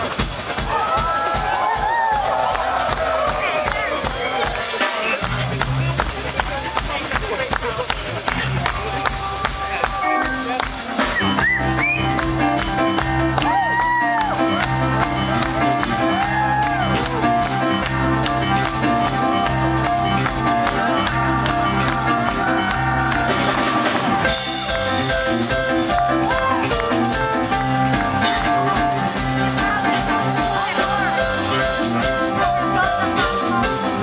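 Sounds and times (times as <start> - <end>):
jazz-funk band playing: 0.0 - 34.0
electric bass line: 5.2 - 34.0
sliding high notes: 8.0 - 34.0.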